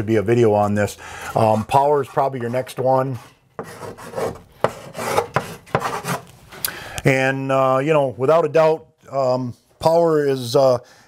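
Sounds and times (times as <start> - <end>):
chalk scratching on chalkboard: 1.2 - 6.3
chalk tapping on board: 3.6 - 6.2.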